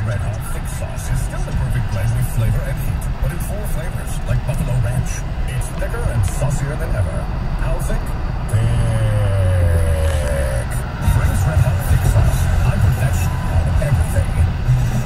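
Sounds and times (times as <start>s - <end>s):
car road and engine noise: 0.0s - 15.0s
faint radio music: 0.0s - 15.0s
radio talk: 0.0s - 15.0s.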